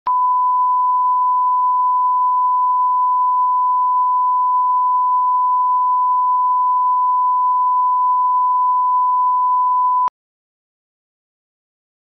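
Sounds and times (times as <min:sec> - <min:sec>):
pure sine test tone: 0:00.1 - 0:10.1.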